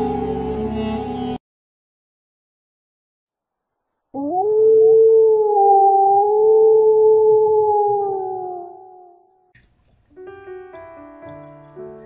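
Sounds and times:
wolf howling: 4.2 - 9.4.

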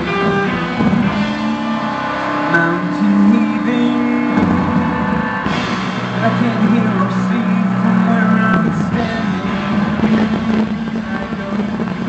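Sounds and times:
live band playing instrumental: 0.0 - 12.0
low bass note: 0.0 - 12.0.

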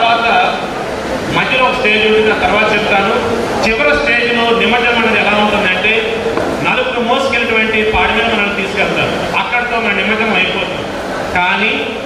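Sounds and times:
man speaking into a microphone: 0.0 - 0.7, 1.3 - 12.0.

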